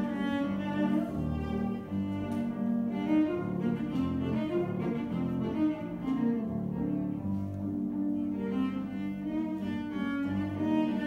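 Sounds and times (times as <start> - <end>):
bowed cello classical piece: 0.0 - 11.0.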